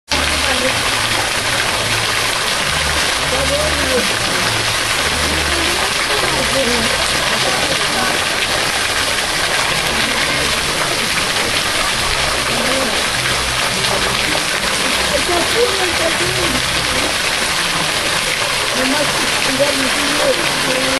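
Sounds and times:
faint voices: 0:00.1 - 0:20.9
water splashing into pool: 0:00.1 - 0:20.9.

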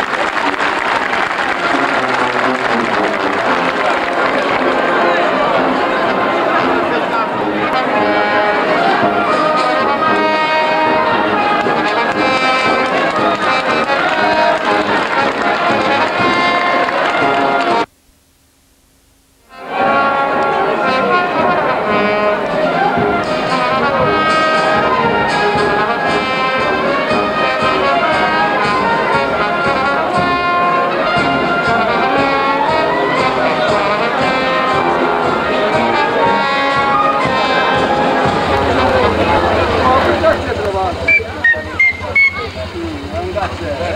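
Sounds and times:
brass band playing: 0:00.0 - 0:17.9, 0:19.5 - 0:42.7.

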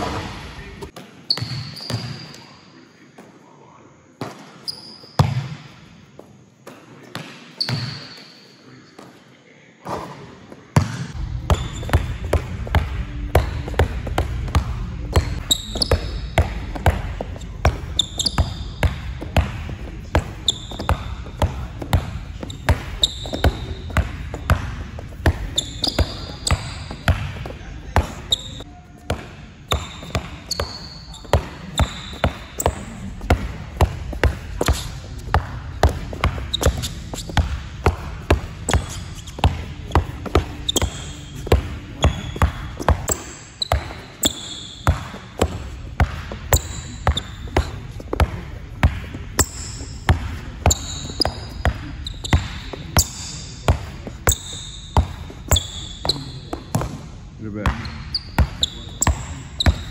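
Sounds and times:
basketball bouncing on gym floor: 0:00.0 - 0:02.3, 0:04.2 - 0:05.8, 0:06.6 - 0:08.1, 0:10.7 - 0:59.9
sneaker squeaks: 0:00.0 - 0:02.7, 0:04.2 - 0:09.2, 0:09.9 - 0:59.9.

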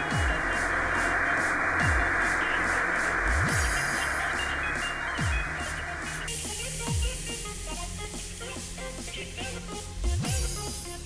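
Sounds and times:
deep bass sweeping down: 0:00.0 - 0:08.0
electronic music: 0:00.0 - 0:11.0
steady hiss: 0:00.0 - 0:11.0.

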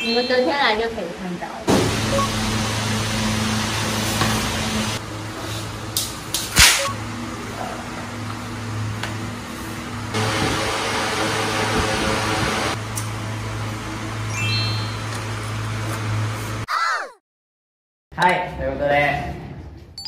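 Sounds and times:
low hum: 0:06.8 - 0:16.4.

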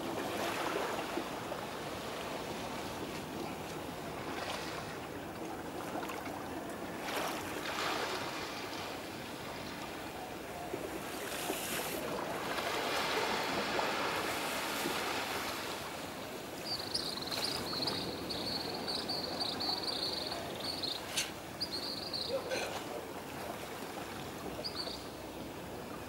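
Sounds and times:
small waves on sandy shore: 0:00.0 - 0:26.0.

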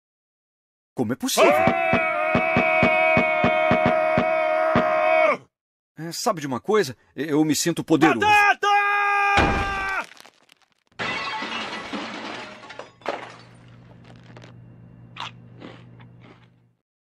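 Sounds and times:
man shouting: 0:01.3 - 0:05.5, 0:08.0 - 0:10.0
glass shattering: 0:09.4 - 0:14.2
faint low hum: 0:13.2 - 0:16.8.

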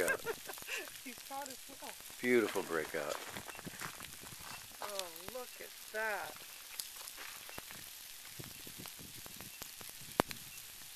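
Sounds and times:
lava crust clicking: 0:00.0 - 0:10.9
steady hiss: 0:00.0 - 0:10.9.

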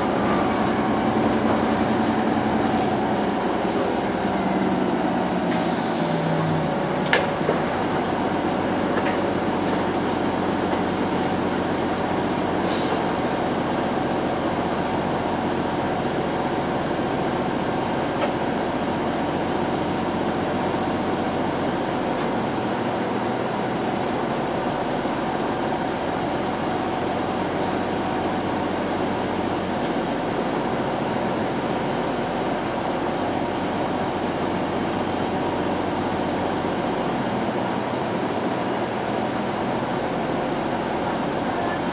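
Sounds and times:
streetcar humming: 0:00.0 - 0:41.9
streetcar motor whine: 0:00.0 - 0:41.9
short hisses: 0:05.5 - 0:06.3.

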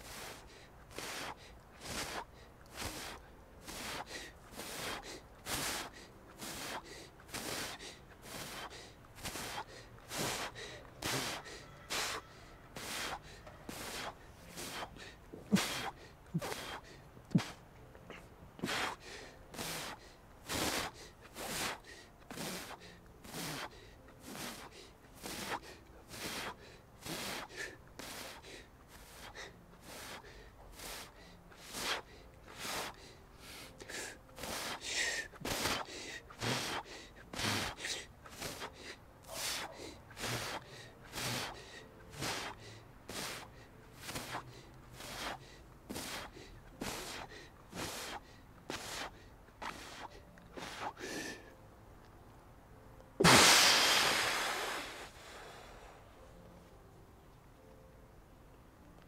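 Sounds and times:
person breathing rapidly: 0:00.0 - 0:51.6.

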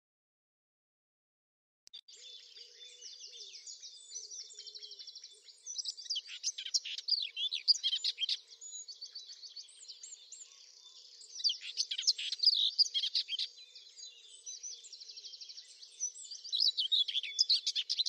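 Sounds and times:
birds chirping and trilling: 0:02.0 - 0:18.0.

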